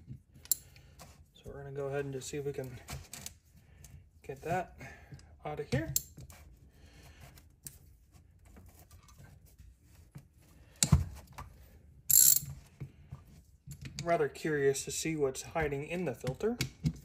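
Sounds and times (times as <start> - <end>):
ratchet wrench clicking: 12.1 - 12.4.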